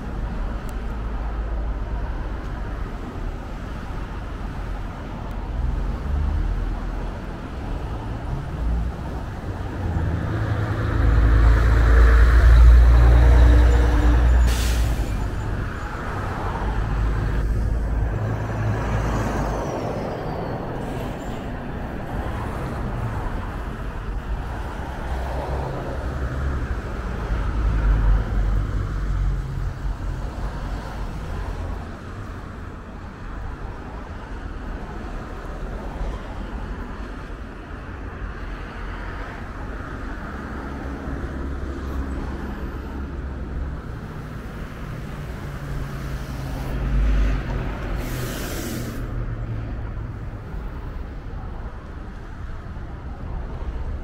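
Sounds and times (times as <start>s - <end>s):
traffic rumbling past: 0.0s - 54.0s.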